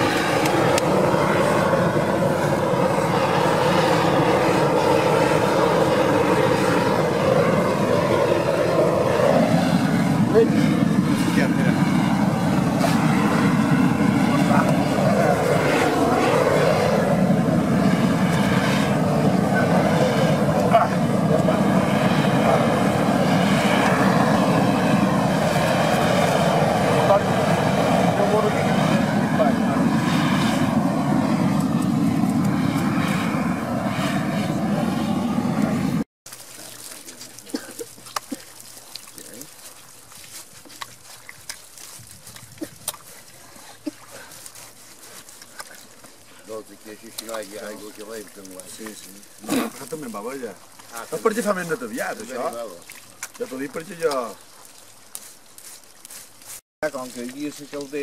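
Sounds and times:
gas torch rushing: 0:00.0 - 0:36.0.

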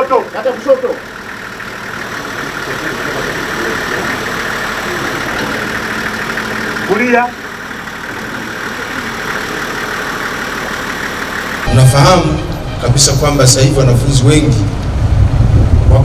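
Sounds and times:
bus engine idling: 0:00.0 - 0:16.0.

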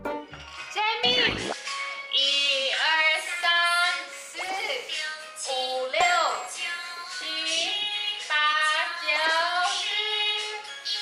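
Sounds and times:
backing music: 0:00.0 - 0:09.8.

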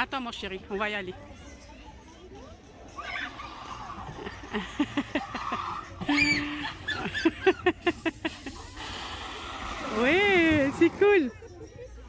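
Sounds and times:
people laughing and whooping: 0:02.9 - 0:10.1.

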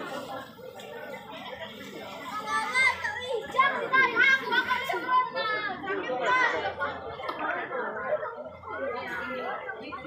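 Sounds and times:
crowd chatter: 0:00.0 - 0:10.0
children shouting: 0:02.3 - 0:06.8.

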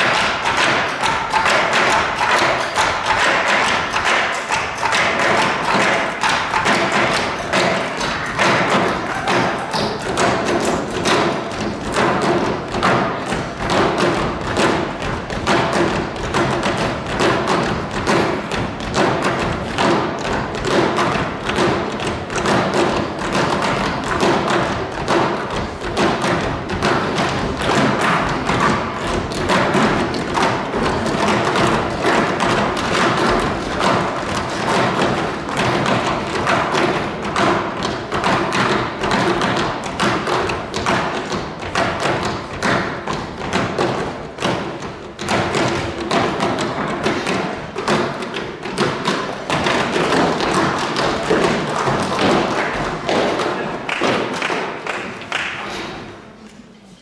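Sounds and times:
percussion ensemble playing: 0:00.0 - 0:56.4.

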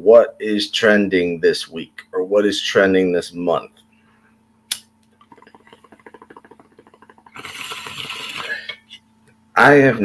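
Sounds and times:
water pipe bubbling: 0:05.2 - 0:09.0.

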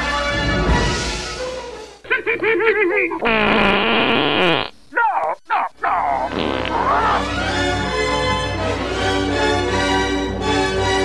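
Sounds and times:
person making goofy noises: 0:02.0 - 0:04.1, 0:04.9 - 0:07.3.

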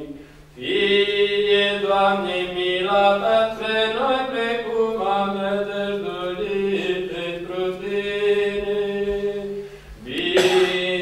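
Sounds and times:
church chant melody: 0:00.0 - 0:11.0.

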